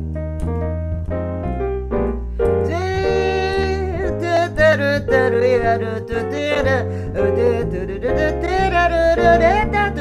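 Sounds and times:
piano: 0.0s - 10.0s
steady bass line: 0.0s - 10.0s
woman singing jazz with vibrato: 2.6s - 10.0s.

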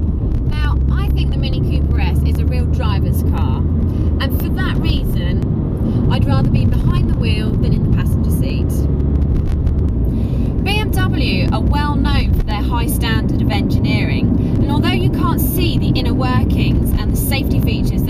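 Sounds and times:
car engine and road noise drone: 0.0s - 18.0s
woman talking: 0.5s - 3.6s, 4.2s - 8.8s, 10.6s - 18.0s.

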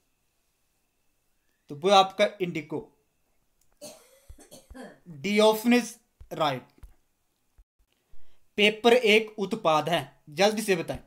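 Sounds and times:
man speaking: 1.7s - 2.9s, 5.1s - 6.7s, 8.6s - 11.0s
man coughing: 3.8s - 4.8s.

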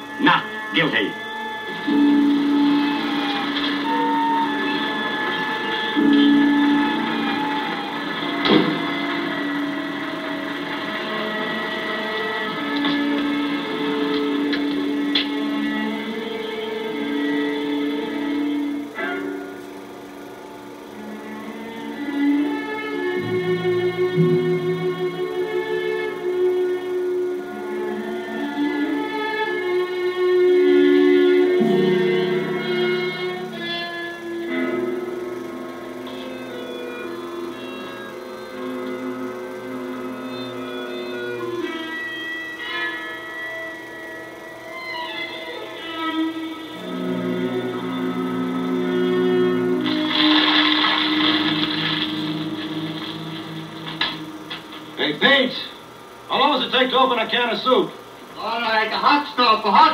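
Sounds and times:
harmonica film score: 0.0s - 59.9s.

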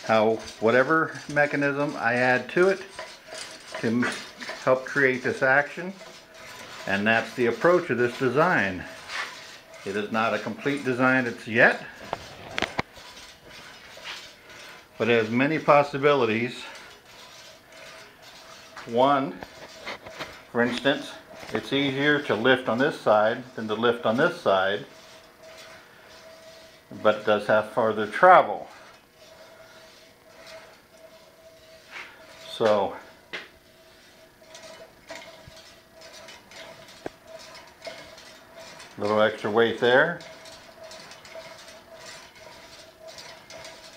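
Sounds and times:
mechanical rattle and whir: 0.0s - 43.9s.

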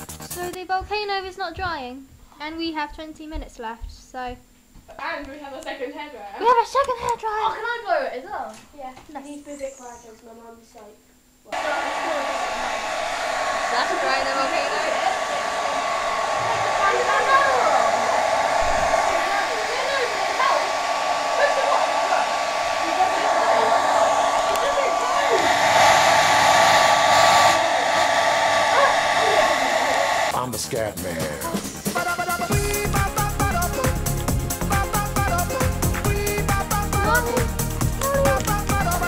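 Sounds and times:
hairdryer running with thin whine: 11.5s - 30.3s, 32.4s - 39.0s.

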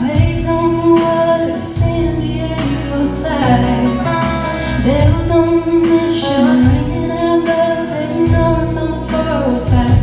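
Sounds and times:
live country band: 0.0s - 10.0s
woman singing: 0.0s - 10.0s.

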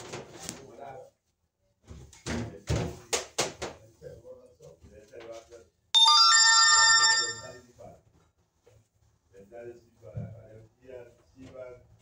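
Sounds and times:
electronic chime: 6.0s - 7.6s.

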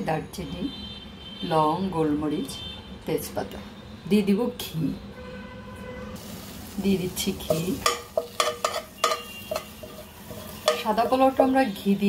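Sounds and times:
ghee sizzling in a pot: 6.2s - 12.0s
metal spoon clicking on pot: 7.5s - 11.2s.

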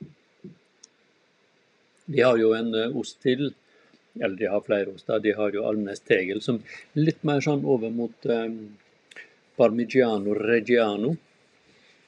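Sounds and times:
room hiss: 0.0s - 12.0s
faint click: 0.8s - 1.0s.

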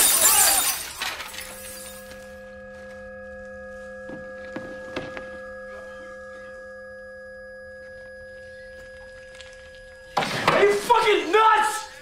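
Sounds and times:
glass shattering and falling: 0.0s - 2.2s
ringing held tones: 0.0s - 10.2s.

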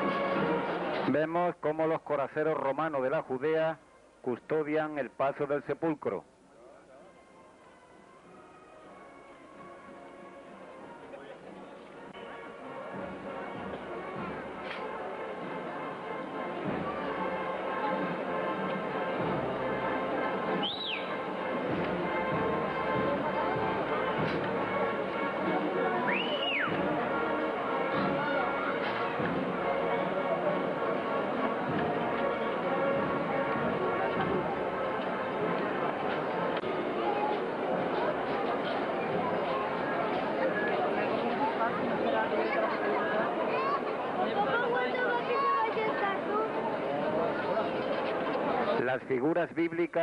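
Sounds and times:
murmur of crowd voices: 0.0s - 50.0s
band music: 9.3s - 48.8s
short high whistle-like notes: 20.6s - 21.2s, 26.0s - 26.8s.

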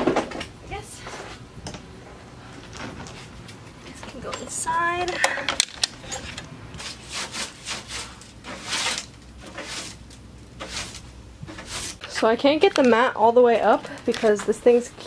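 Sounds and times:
broom sweeping floor: 6.8s - 12.2s.

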